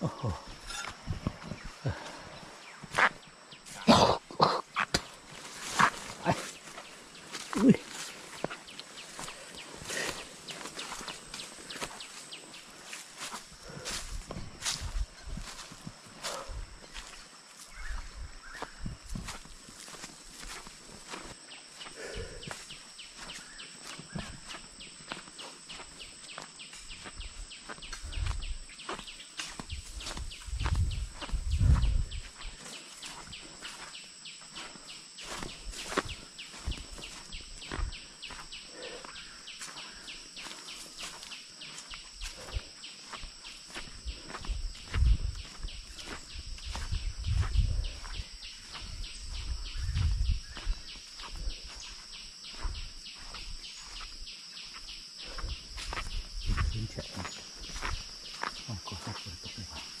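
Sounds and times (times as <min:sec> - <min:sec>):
high-pitched insect drone: 0:00.0 - 1:00.0
footsteps crunching through dry leaves: 0:04.9 - 1:00.0.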